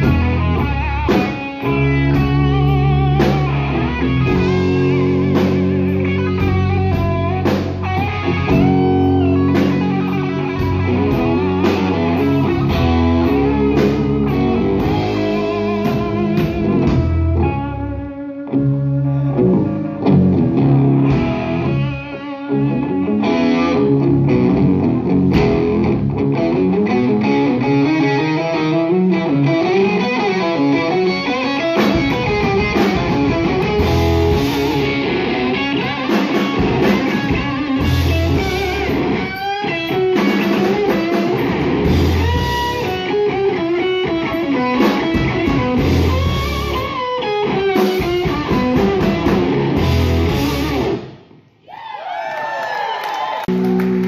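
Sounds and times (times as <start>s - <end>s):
drum kit: 0.0s - 28.1s, 29.2s - 51.4s
electric guitar lead lines: 0.0s - 51.6s
bass: 0.0s - 54.0s.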